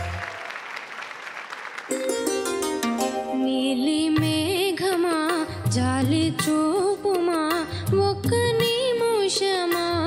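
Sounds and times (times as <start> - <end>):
audience applauding: 0.0 - 2.9
introductory music: 1.9 - 3.6.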